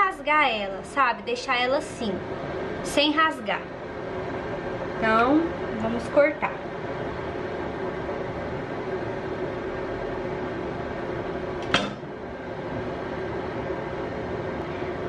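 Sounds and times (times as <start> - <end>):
machine humming: 0.0 - 15.0.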